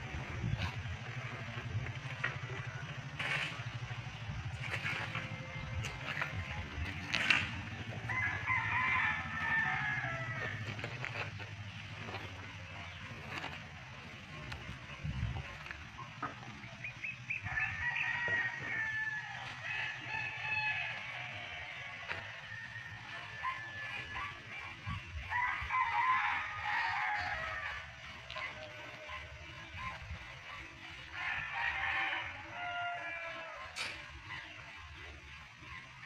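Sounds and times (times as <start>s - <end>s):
rooster crowing: 7.9s - 11.0s, 17.3s - 29.8s, 31.0s - 34.6s.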